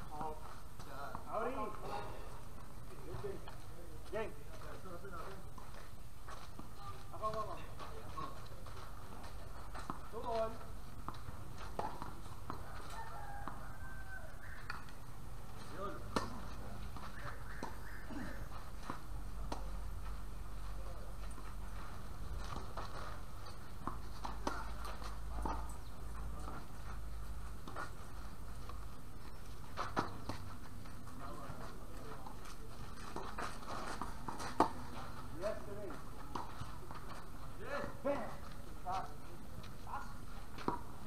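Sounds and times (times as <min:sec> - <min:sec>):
outdoor background hiss: 0:00.0 - 0:12.7, 0:13.6 - 0:41.0.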